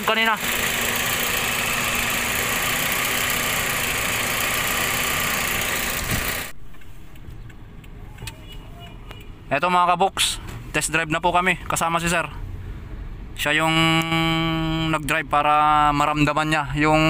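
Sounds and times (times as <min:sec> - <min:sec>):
car engine running: 0:00.0 - 0:07.6.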